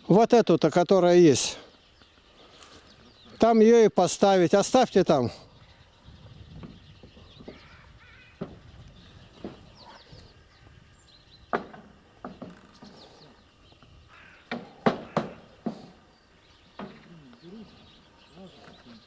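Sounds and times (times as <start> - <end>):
hammer knocking on roof: 11.5 - 12.6, 14.5 - 16.0.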